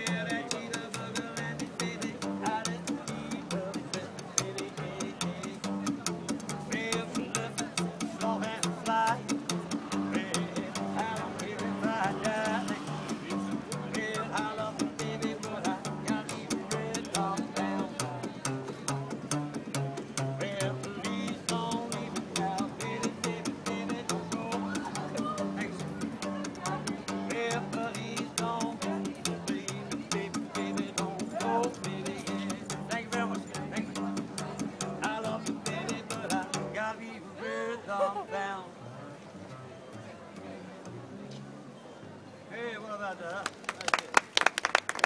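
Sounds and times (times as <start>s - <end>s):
plucked double bass: 0.0s - 37.0s.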